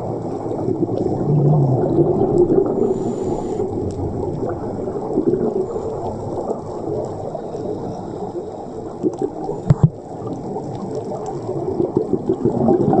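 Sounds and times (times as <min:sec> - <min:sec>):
muffled underwater rumble: 0:00.0 - 0:13.0.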